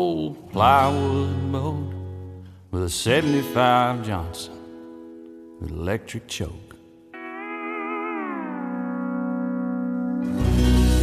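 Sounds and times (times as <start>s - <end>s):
steel guitar sliding chord: 7.2s - 11.0s
deep bass music: 10.3s - 11.0s.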